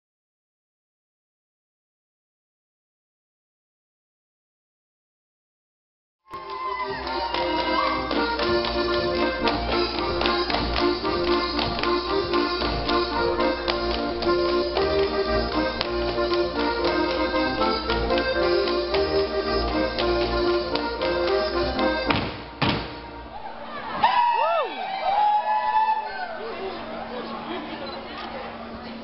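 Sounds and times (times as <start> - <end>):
folk dance music: 6.3 - 24.4
dancers slapping and stamping: 6.4 - 23.0
heavy thumps of shoes on floor: 7.4 - 21.3, 22.0 - 23.0.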